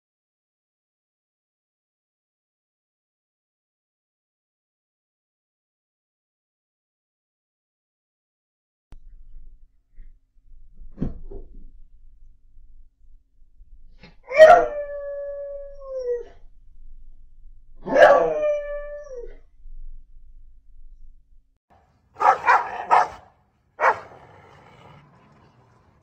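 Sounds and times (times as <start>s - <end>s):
dog howling: 14.3s - 16.4s, 17.9s - 19.4s
dog barking sharply: 22.2s - 24.2s.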